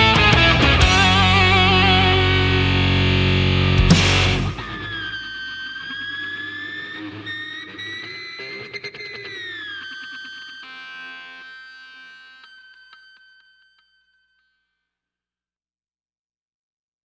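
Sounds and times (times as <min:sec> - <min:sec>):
band final hit: 0:00.0 - 0:05.1
distorted lead guitar note ringing: 0:00.0 - 0:14.3.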